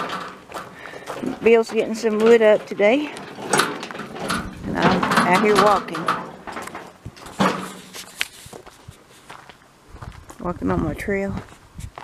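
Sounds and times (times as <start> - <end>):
footsteps on wood chips: 0.0 - 5.1, 6.2 - 10.5.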